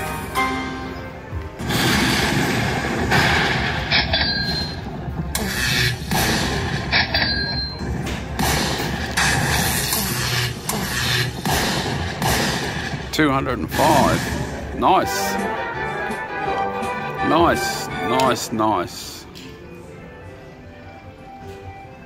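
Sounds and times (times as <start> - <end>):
loud crashing hits: 1.6 - 4.1
slot machine win music: 13.1 - 18.9.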